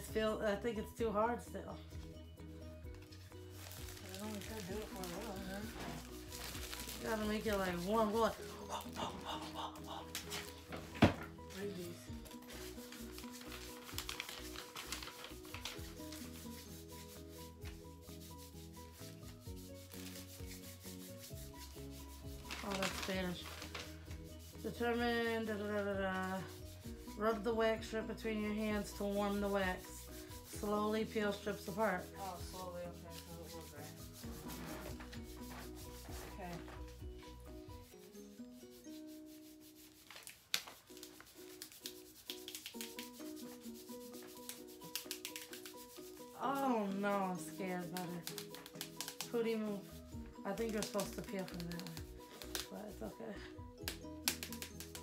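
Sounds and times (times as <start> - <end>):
soft background music: 0.0 - 55.0
hands rubbing wax strip: 3.5 - 10.7, 12.3 - 25.0, 28.5 - 37.4, 38.1 - 52.8, 53.8 - 55.0.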